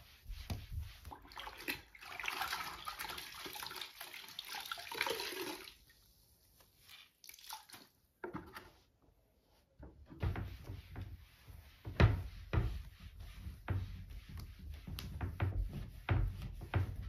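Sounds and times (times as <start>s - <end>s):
water splashing into bucket: 1.2s - 5.8s, 7.2s - 7.9s.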